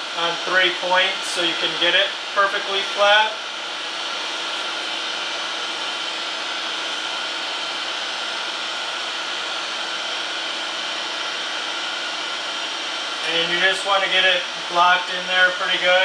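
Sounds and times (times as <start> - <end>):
machine whirring with hum: 0.0 - 16.0.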